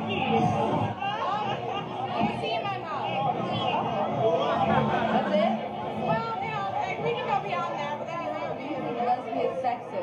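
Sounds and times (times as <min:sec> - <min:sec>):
overlapping voices talking: 0:00.0 - 0:10.0.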